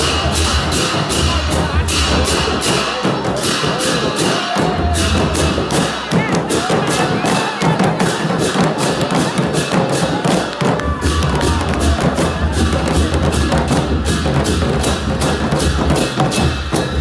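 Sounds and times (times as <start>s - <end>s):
barrel drums beating: 0.0s - 17.0s
crowd shouting and chatter: 0.0s - 17.0s.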